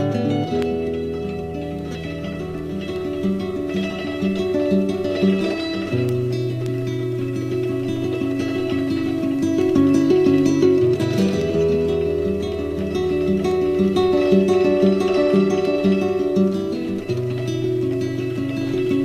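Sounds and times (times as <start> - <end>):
picked acoustic guitar: 0.0 - 19.0.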